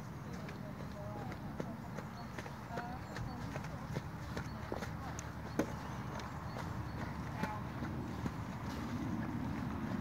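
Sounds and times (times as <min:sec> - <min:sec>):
horse hooves trotting: 0:00.0 - 0:10.0.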